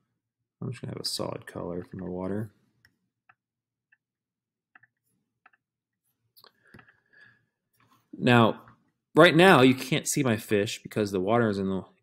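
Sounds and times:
computer mouse clicks: 4.7s - 5.7s.

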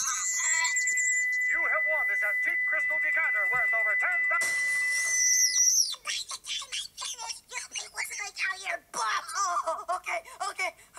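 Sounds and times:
squeaky vocal sounds: 0.0s - 1.2s.

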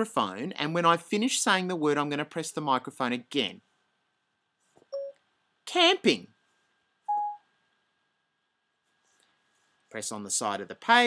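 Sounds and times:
short beep: 5.0s - 5.2s, 7.1s - 7.4s.

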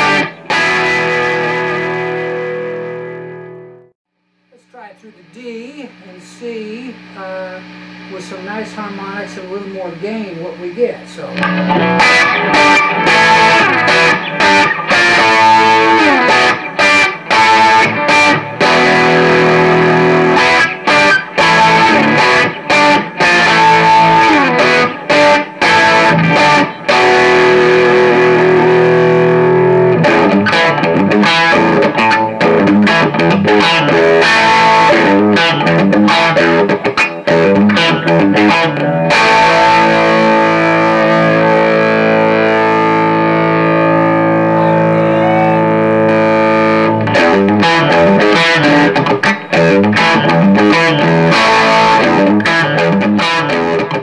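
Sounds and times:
overdriven electric guitar chords: 0.0s - 54.0s.

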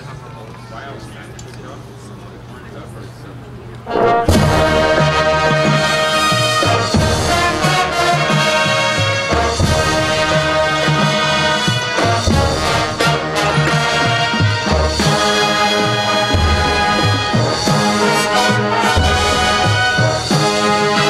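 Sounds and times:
low voices: 0.0s - 4.0s
marching band playing: 3.8s - 21.0s
sharp drum accents: 4.0s - 21.0s.

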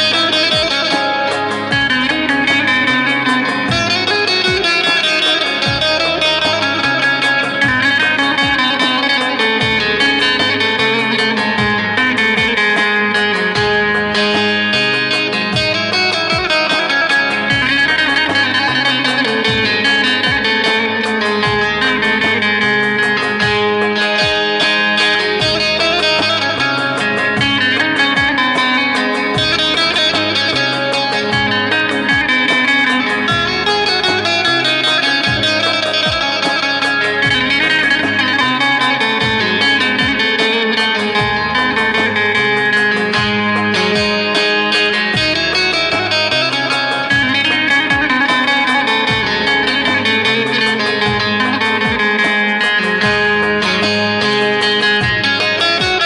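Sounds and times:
plucked lute melody: 0.0s - 56.0s.

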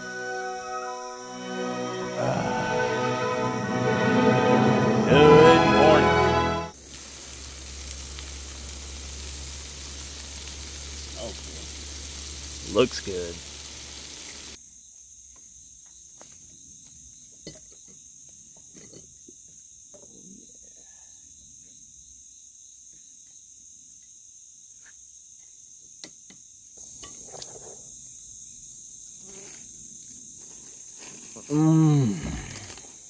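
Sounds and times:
high-pitched insect chorus: 0.0s - 6.0s, 6.7s - 33.0s.

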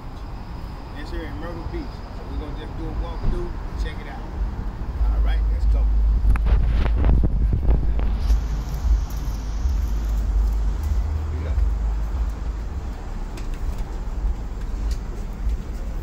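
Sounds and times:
low rumble of road traffic: 0.0s - 16.0s.

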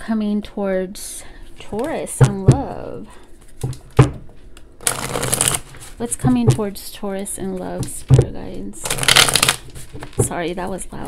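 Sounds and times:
cards riffling: 4.8s - 6.0s, 8.8s - 10.2s.

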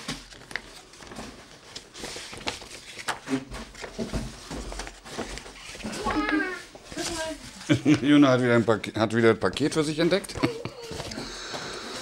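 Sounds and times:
paper envelope rustling and crinkling: 0.0s - 7.8s.

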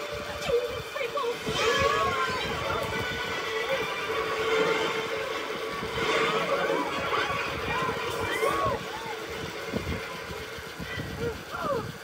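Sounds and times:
film soundtrack through tv speakers: 0.0s - 12.0s.

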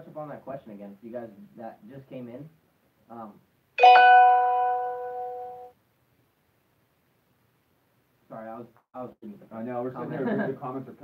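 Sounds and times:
bell-like chime ringing: 3.8s - 5.7s.

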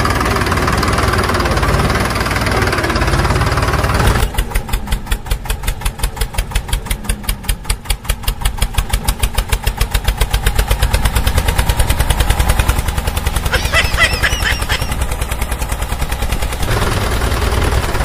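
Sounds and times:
small engine putt-putting: 0.0s - 18.0s
small tractor engines running: 0.0s - 18.0s.

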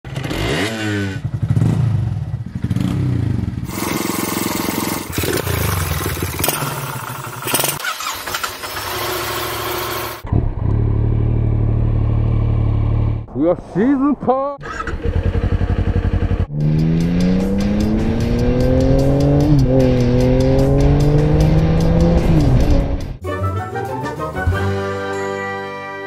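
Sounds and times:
motorcycle engine revving: 0.1s - 13.3s, 14.6s - 23.2s.

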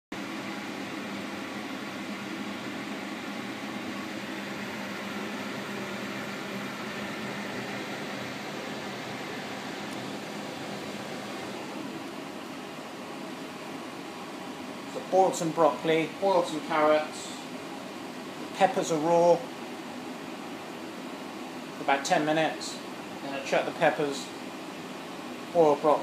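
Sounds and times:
fan whirring: 0.1s - 26.0s.

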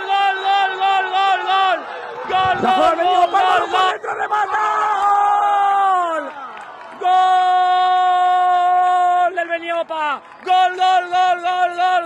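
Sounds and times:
man shouting goal: 0.0s - 6.3s.

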